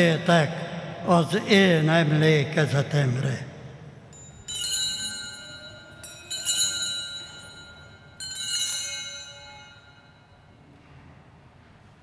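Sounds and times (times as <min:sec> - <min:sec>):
altar bells ringing: 0:04.0 - 0:10.6.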